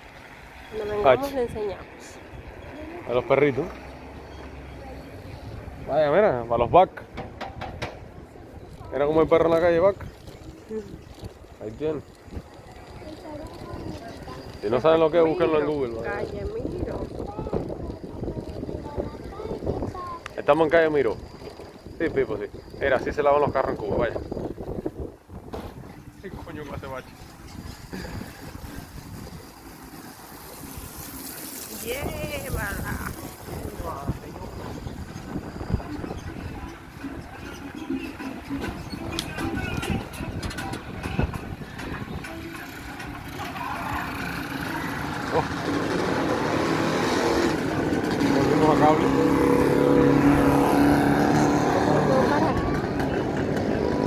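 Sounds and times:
road noise: 0.0s - 54.0s
wind rumbling on microphone: 6.6s - 42.8s
faint voices: 7.9s - 54.0s
motorcycle motor running: 8.8s - 54.0s.

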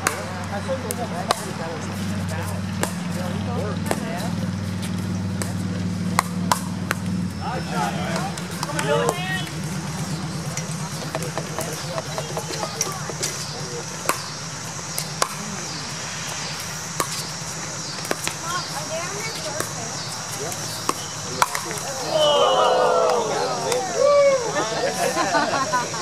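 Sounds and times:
paddles striking pickleball: 0.0s - 25.4s
steady low hum: 0.0s - 26.0s.

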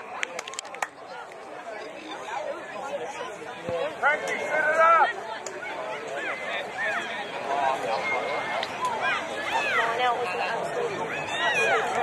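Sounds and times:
voices talking and calling: 0.0s - 12.0s.

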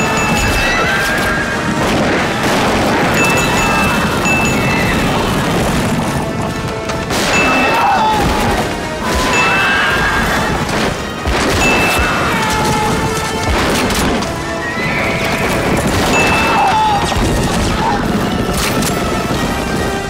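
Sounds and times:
horses whinnying: 0.0s - 5.9s, 7.4s - 10.8s, 11.5s - 18.2s
galloping hooves: 0.0s - 20.0s
orchestral music: 0.0s - 20.0s.

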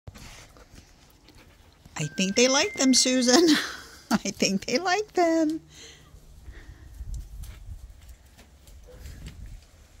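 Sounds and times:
dog panting: 0.1s - 2.0s.

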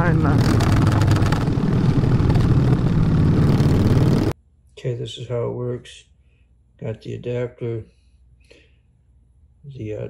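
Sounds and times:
motorcycle engine running: 0.0s - 4.4s
road and wind noise: 0.0s - 4.4s.

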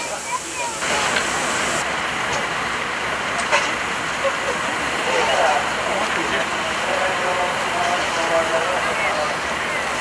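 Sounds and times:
steam locomotive hissing: 0.0s - 1.8s.

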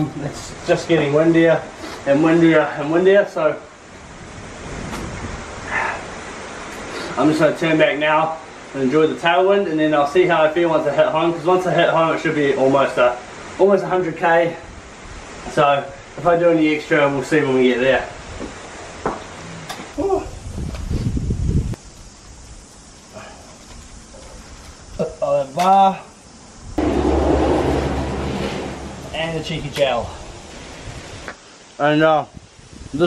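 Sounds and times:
wind blowing across microphone: 3.7s - 6.9s, 14.3s - 23.0s, 26.5s - 33.0s.

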